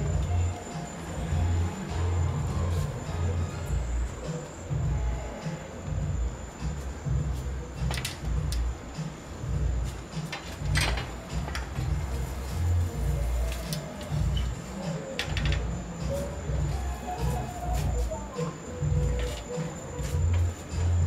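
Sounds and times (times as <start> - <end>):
music with heavy bass: 0.0 - 21.0.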